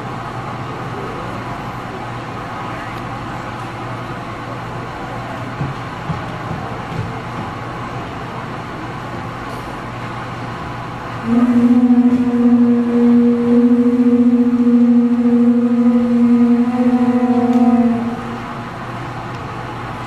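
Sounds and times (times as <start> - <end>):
low murmur of hall: 0.0 - 20.0
conch shell trumpets blown: 11.2 - 18.6.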